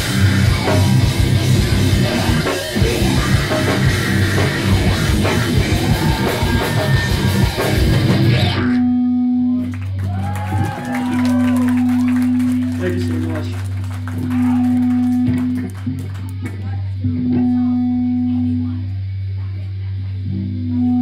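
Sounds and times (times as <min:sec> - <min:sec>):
metalcore band playing live: 0:00.0 - 0:08.6
sustained bass note: 0:00.0 - 0:10.0, 0:11.3 - 0:21.0
vocalist screaming: 0:05.6 - 0:07.9.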